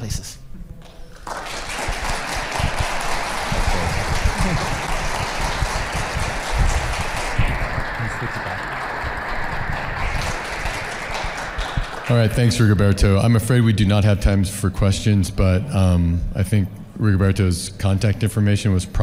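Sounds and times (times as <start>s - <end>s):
audience applauding: 0.8s - 13.1s.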